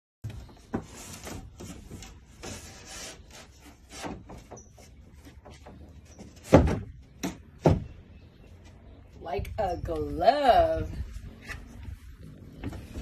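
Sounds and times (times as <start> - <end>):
wooden board scraping and knocking: 0.2 - 7.9
loud wooden thud: 6.4 - 7.9.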